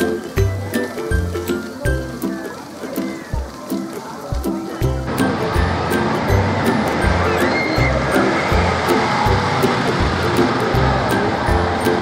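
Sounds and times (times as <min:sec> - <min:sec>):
steady rushing noise: 0:02.6 - 0:12.0
music with low beat: 0:04.2 - 0:12.0.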